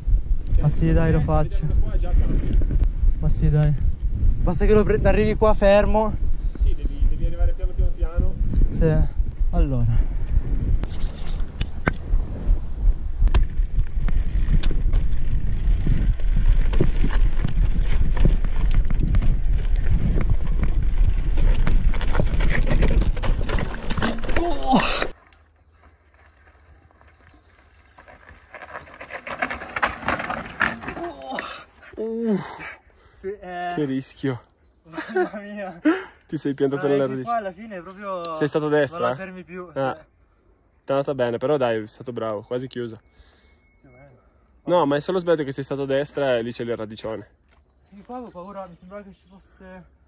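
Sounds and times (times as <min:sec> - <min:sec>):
bike rolling rumble: 0:00.0 - 0:03.2, 0:11.7 - 0:31.7
wind on microphone: 0:00.0 - 0:24.8
bike rattling over rocks: 0:13.4 - 0:31.7.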